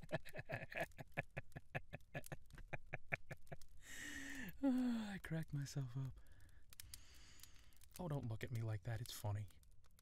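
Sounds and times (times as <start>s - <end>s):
man laughing: 0.0s - 3.8s.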